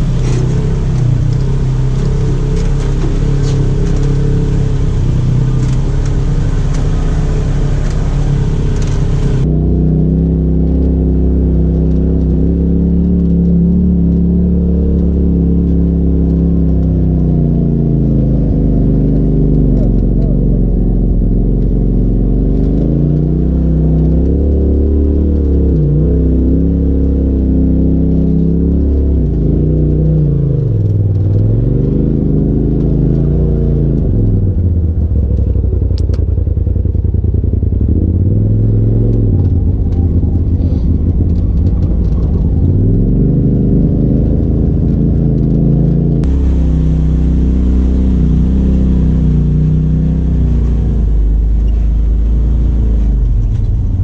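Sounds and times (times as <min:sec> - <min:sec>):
utility vehicle engine revving: 0:00.0 - 0:54.0.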